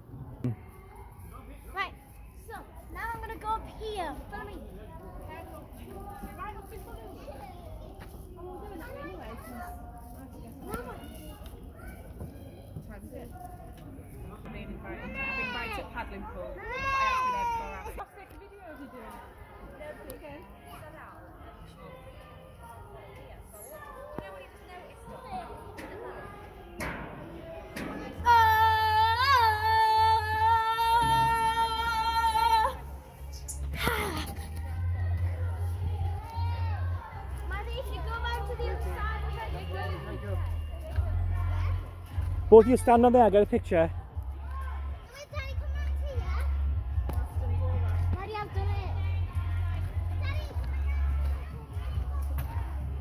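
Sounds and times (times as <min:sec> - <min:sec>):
children calling and talking: 0:00.0 - 0:53.0.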